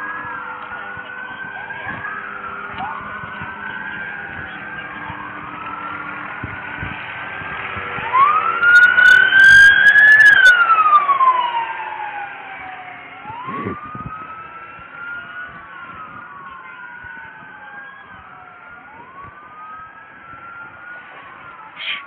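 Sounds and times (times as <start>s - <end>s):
emergency sirens wailing: 0.0s - 22.0s.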